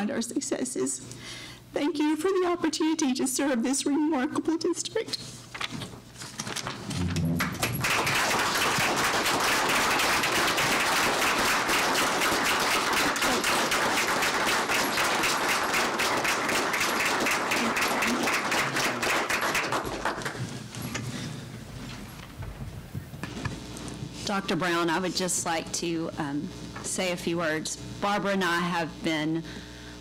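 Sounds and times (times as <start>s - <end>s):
crowd clapping: 6.9s - 20.6s.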